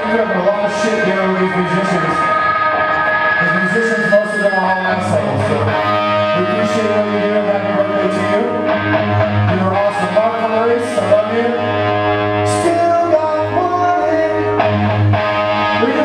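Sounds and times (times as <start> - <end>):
rock band playing: 0.0 - 16.0.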